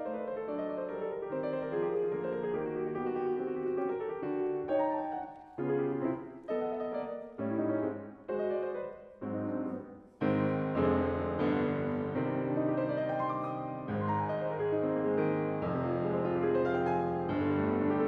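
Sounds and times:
grand piano playing: 0:00.0 - 0:18.0.

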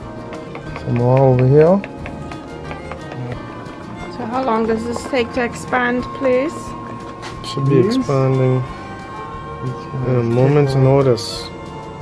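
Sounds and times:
music with steady beat: 0:00.0 - 0:12.0.

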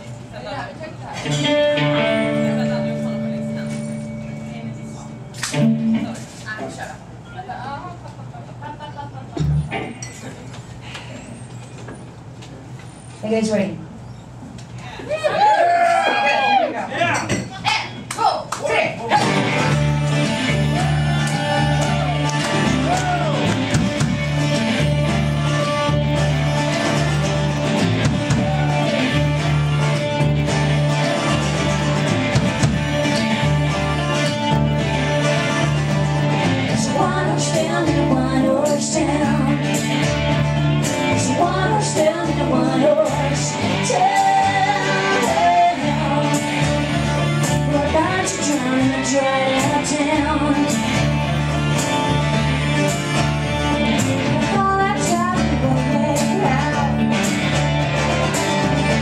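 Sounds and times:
acoustic guitar: 0:00.0 - 0:07.2, 0:09.3 - 0:13.1, 0:19.0 - 0:59.0
double bass plucking: 0:01.2 - 0:06.3, 0:09.4 - 0:10.0, 0:19.1 - 0:59.0
banjo: 0:19.1 - 0:59.0.

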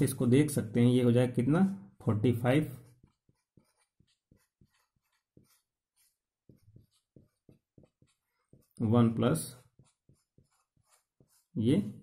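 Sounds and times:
marker pen writing: 0:02.3 - 0:12.0.

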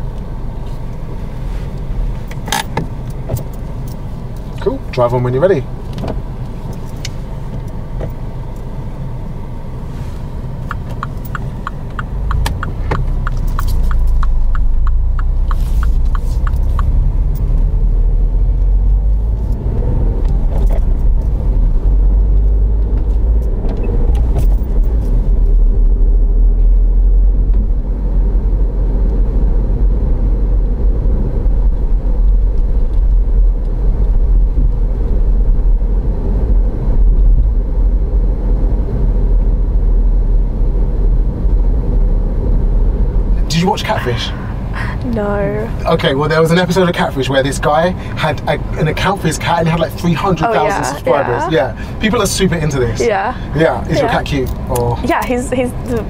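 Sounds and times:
engine and road noise rumble: 0:00.0 - 0:56.0
car indicator ticking: 0:10.6 - 0:17.0.

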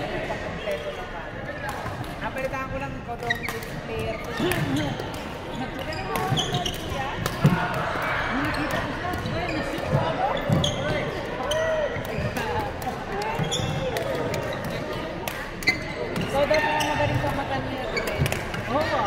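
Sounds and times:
shoes squeaking on wooden floor: 0:09.3 - 0:12.5.

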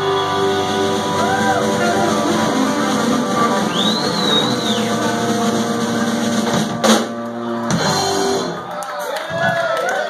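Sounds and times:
rock band playing: 0:00.0 - 0:09.1.

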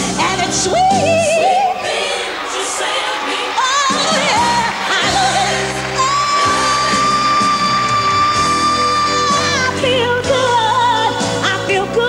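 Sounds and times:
band playing: 0:00.0 - 0:12.0
woman singing: 0:00.0 - 0:12.0.

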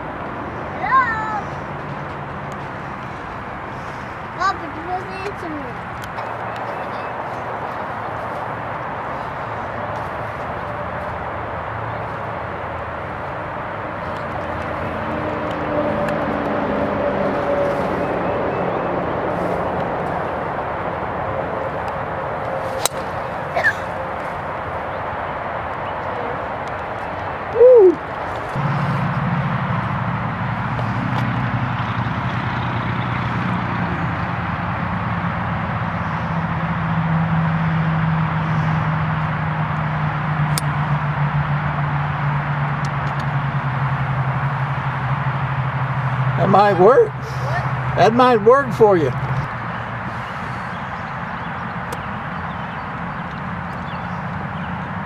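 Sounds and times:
golf club striking ball: 0:22.8 - 0:23.2.

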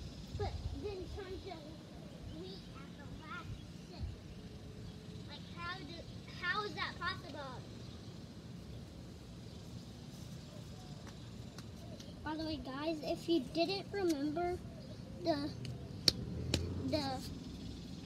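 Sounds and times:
distant person talking and calling: 0:00.2 - 0:07.9, 0:10.4 - 0:17.5.

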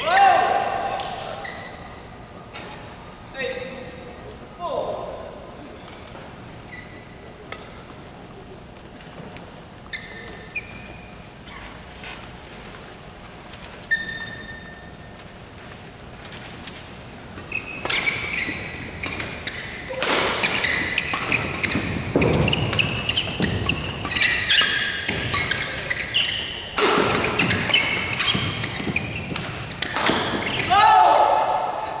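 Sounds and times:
shoe squeaks on court: 0:01.3 - 0:02.1, 0:06.6 - 0:07.3, 0:09.8 - 0:12.4, 0:13.8 - 0:15.1, 0:17.4 - 0:30.7
racket hitting shuttlecock: 0:17.4 - 0:26.1, 0:26.7 - 0:30.7.

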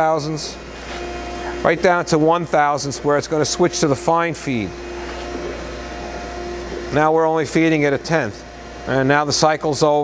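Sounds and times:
surface grinder humming: 0:00.0 - 0:10.0.

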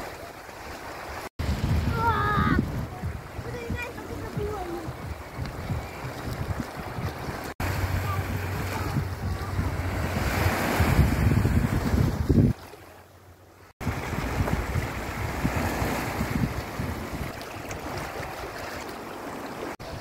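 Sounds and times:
small waves washing ashore: 0:00.0 - 0:20.0
wind buffeting microphone: 0:01.4 - 0:12.8, 0:13.7 - 0:19.0.

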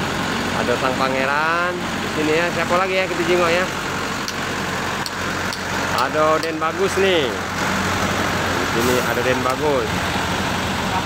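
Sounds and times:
diesel bus engine idling: 0:00.0 - 0:11.0.

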